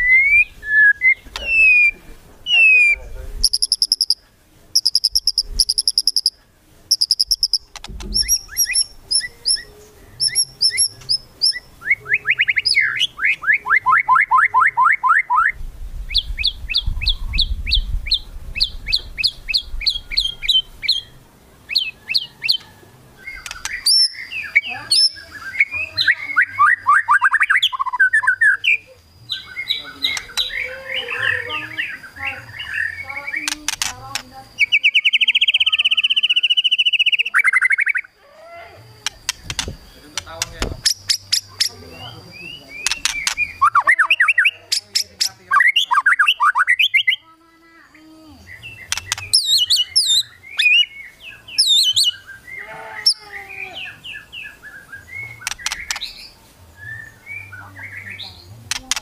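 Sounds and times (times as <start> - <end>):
bird singing varied song: 0.0 - 59.0
rattling bird notes: 3.4 - 4.2, 23.2 - 24.3.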